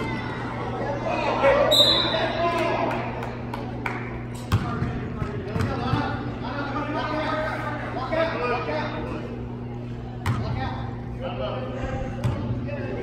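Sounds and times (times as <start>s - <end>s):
steady low hum: 0.0s - 13.0s
voices echoing in a gym: 0.0s - 13.0s
referee's whistle blast: 1.7s - 2.2s
ball bouncing on court floor: 4.4s - 6.1s, 10.2s - 10.6s.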